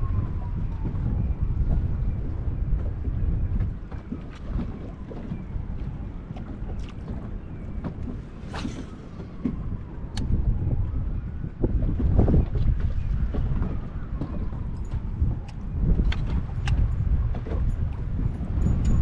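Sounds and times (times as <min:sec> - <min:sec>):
faint trolling motor whine: 0:00.0 - 0:19.0
waves slapping against hull: 0:00.0 - 0:19.0
wind buffeting microphone: 0:00.0 - 0:19.0.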